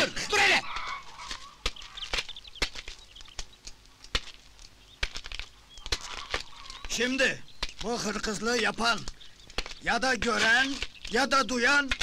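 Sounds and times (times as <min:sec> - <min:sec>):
faint bird chirps: 0:00.0 - 0:04.0, 0:04.6 - 0:11.9
footsteps on dirt: 0:00.0 - 0:12.0.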